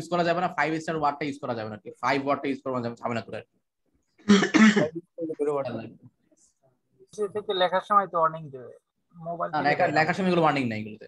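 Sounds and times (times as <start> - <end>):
man clearing his throat: 4.3 - 5.0.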